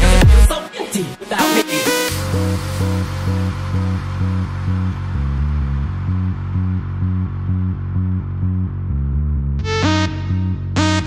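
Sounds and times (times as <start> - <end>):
pulsing synth bass line: 1.5 - 11.0
low held bass note: 3.2 - 11.0.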